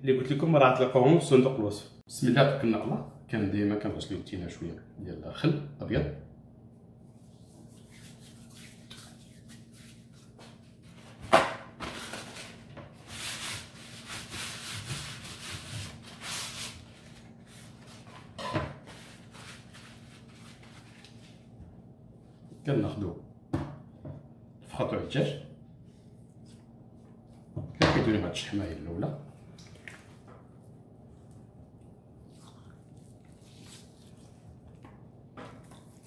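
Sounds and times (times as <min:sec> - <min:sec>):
paper towel rustling: 0:11.8 - 0:21.6, 0:32.9 - 0:34.8.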